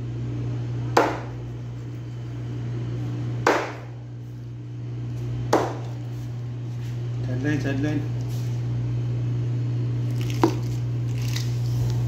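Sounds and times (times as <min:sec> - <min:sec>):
steady low hum: 0:00.0 - 0:12.0
knife chopping on cutting board: 0:01.0 - 0:01.4, 0:03.4 - 0:03.9, 0:05.5 - 0:06.0.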